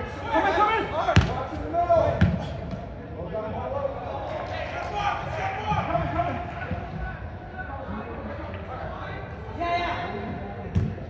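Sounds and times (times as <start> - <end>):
ball kick thuds: 10.7 - 11.0.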